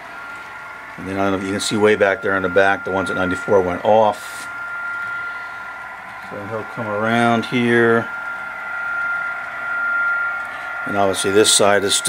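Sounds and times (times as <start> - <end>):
model train rushing hum: 0.0 - 12.0
thin high whine: 0.0 - 12.0.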